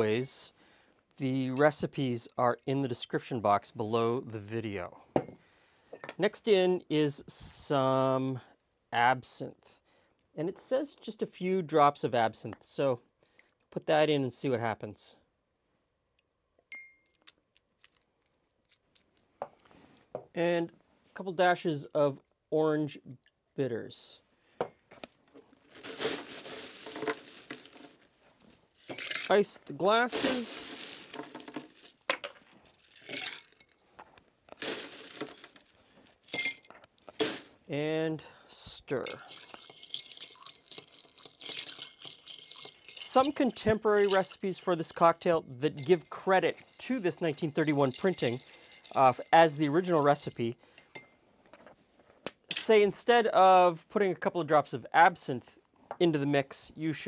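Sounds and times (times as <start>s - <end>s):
ice clinking in stirred glass: 33.0s - 33.8s, 39.1s - 45.1s, 45.8s - 51.1s.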